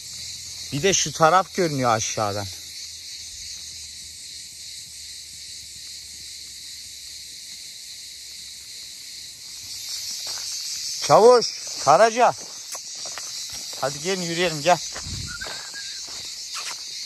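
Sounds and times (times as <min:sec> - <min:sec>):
insects chirring: 0:00.0 - 0:17.0.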